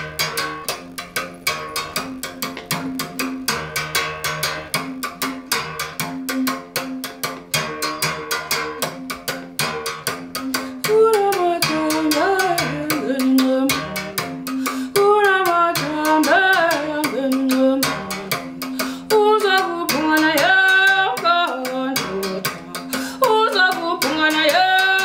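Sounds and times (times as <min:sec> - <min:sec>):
musical bow struck with stick: 0:00.0 - 0:25.0
person singing: 0:06.0 - 0:07.0, 0:10.2 - 0:25.0.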